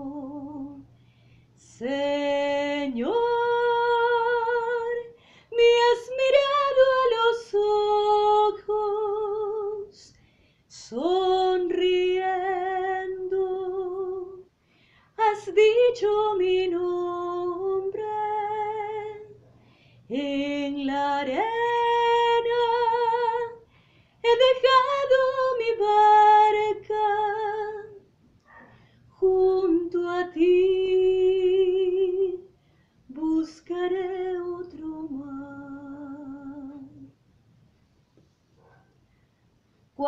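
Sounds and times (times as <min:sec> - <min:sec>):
woman singing unaccompanied: 0:00.0 - 0:00.9, 0:01.6 - 0:14.5, 0:15.2 - 0:19.4, 0:20.1 - 0:23.6, 0:24.2 - 0:28.0, 0:29.1 - 0:32.5, 0:33.1 - 0:37.2
breath: 0:00.9 - 0:01.6, 0:05.2 - 0:05.5, 0:10.1 - 0:10.7, 0:14.6 - 0:15.2, 0:19.4 - 0:20.1, 0:23.6 - 0:24.2, 0:28.4 - 0:29.1, 0:32.6 - 0:33.1.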